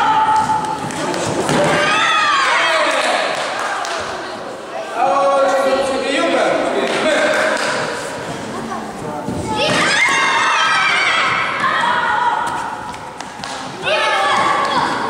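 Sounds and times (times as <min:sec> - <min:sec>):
children shouting in echoing hall: 0:01.7 - 0:04.9, 0:09.5 - 0:12.9, 0:13.8 - 0:15.0.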